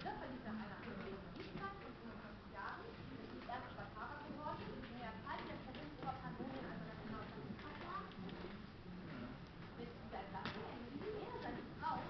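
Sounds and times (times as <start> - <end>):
people talking indistinctly: 0.0 - 12.0.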